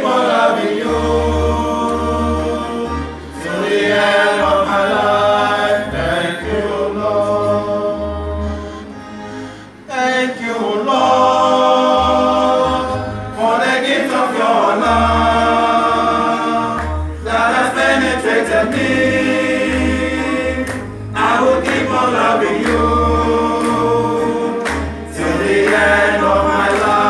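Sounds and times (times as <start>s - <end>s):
male choir singing: 0.0s - 8.8s, 9.9s - 27.0s.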